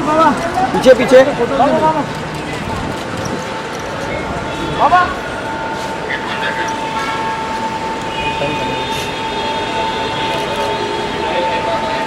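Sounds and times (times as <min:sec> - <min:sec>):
faint voices: 0:00.0 - 0:12.0
noisy hall background: 0:00.0 - 0:12.0.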